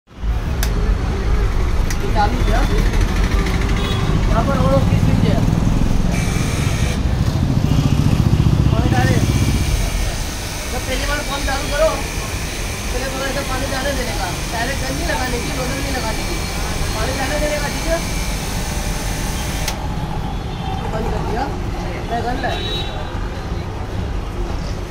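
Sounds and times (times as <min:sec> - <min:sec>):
pressure washer motor hum: 0:05.6 - 0:07.3, 0:09.1 - 0:19.8.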